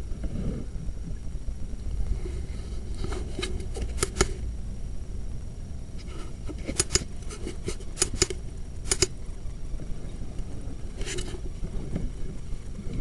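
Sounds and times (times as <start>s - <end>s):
steady low rumble: 0.0s - 13.0s.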